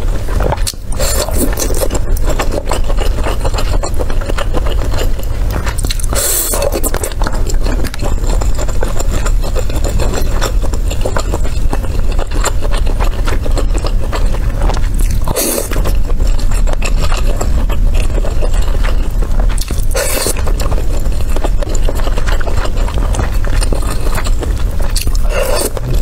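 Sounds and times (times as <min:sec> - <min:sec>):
steady low hum: 0:00.0 - 0:26.0
close-miked wet chewing: 0:00.2 - 0:26.0.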